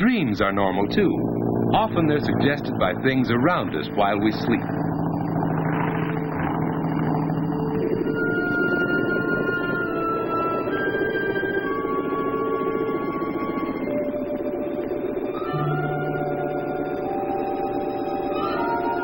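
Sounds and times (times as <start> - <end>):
aircraft engine drone: 0.0 - 19.0
film score music with held notes: 5.6 - 19.0.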